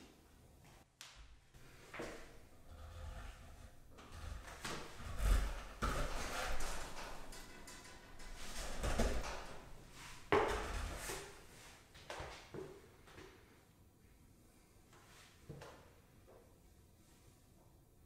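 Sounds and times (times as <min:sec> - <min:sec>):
pull-up bar rig rattling: 0:04.0 - 0:09.7.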